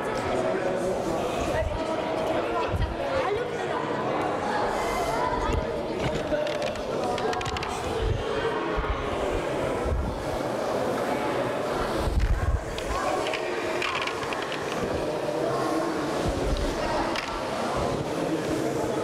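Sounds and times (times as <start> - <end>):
chatter echoing in a hall: 0.0 - 19.0.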